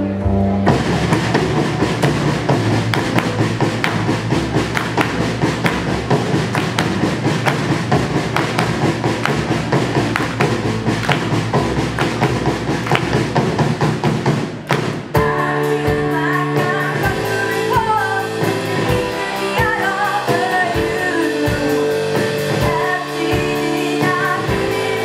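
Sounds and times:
drums: 0:00.0 - 0:25.0
hand claps: 0:02.9 - 0:13.4, 0:14.7 - 0:15.0.

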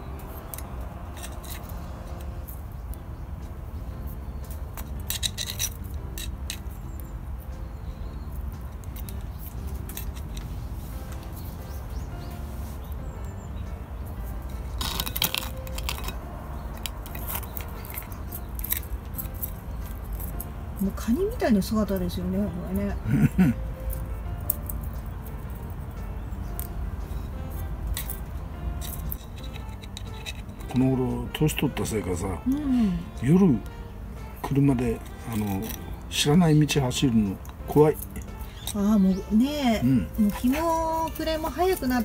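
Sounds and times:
scissors snipping twigs: 0:00.1 - 0:02.4, 0:14.7 - 0:25.7, 0:34.4 - 0:36.1, 0:37.0 - 0:42.0.

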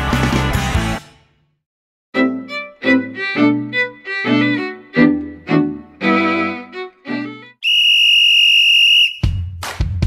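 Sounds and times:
whistle blast: 0:07.6 - 0:09.6.

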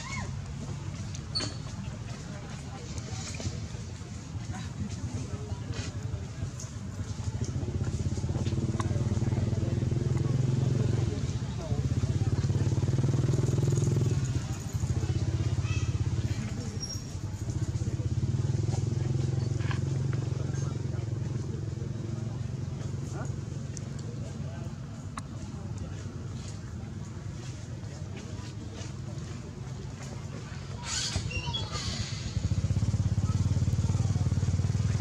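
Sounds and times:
motorbike engines passing: 0:00.0 - 0:35.0.

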